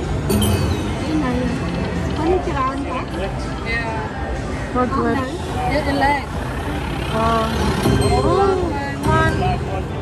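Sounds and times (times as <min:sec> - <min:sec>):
busy casino floor noise: 0:00.0 - 0:10.0
slot machine electronic tones: 0:00.3 - 0:01.8, 0:07.8 - 0:10.0.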